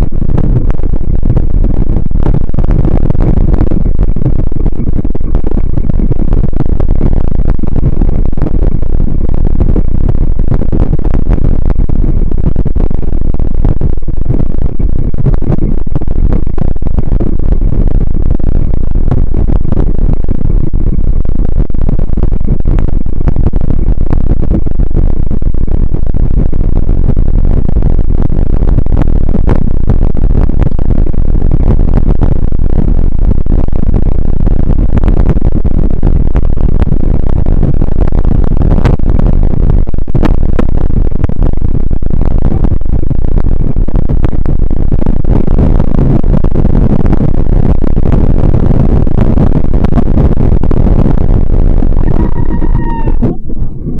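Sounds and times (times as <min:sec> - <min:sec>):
bike rumbling over icy trail: 0:00.0 - 0:54.0
wind buffeting microphone: 0:00.0 - 0:54.0
short pitched call: 0:52.0 - 0:54.0.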